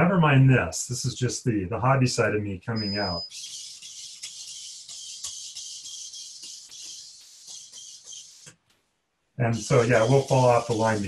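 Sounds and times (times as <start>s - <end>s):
robot servos whirring: 3.2s - 8.6s, 9.5s - 11.0s.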